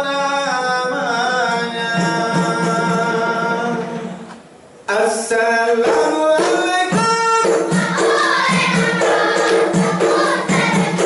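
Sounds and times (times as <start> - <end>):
sharp rhythmic claps: 5.8 - 11.0
girls singing in unison: 7.4 - 11.0.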